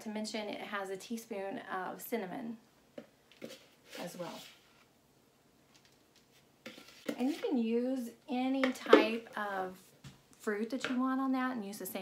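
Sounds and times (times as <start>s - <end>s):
spoon scraping plastic bowl: 3.4s - 4.6s, 6.3s - 7.6s.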